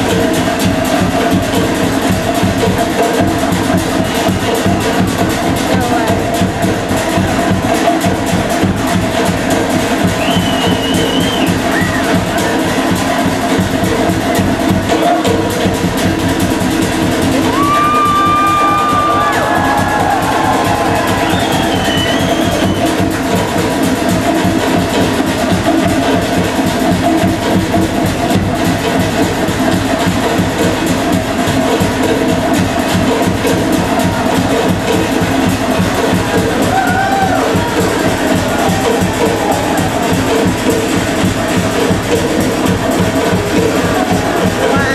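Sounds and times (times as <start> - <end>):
fast steady drumming: 0.0 - 44.9.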